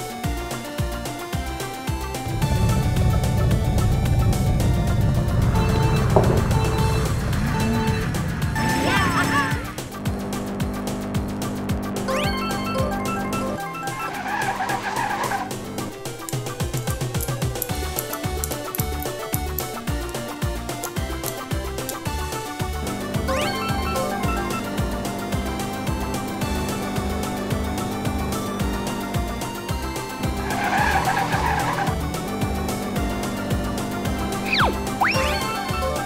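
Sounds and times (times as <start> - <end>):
background music: 0.0 - 36.0
car tyre screech: 13.8 - 16.0, 30.2 - 33.4.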